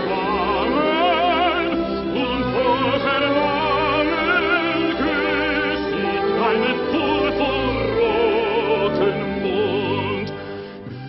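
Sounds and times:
orchestral accompaniment: 0.0 - 11.0.

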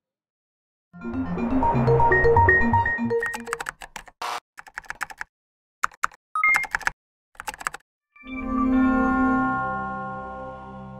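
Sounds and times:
keyboard typing clicks: 3.0 - 7.8.

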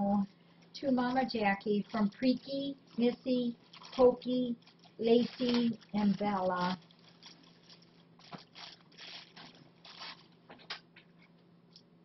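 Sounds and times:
plastic wrapping crinkling: 0.0 - 10.8.

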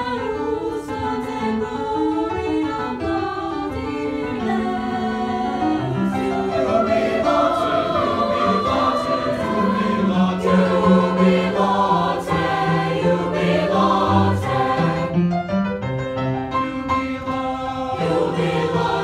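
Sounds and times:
mixed-voice choir singing: 0.0 - 15.3, 16.8 - 19.0
upright piano: 0.0 - 19.0.

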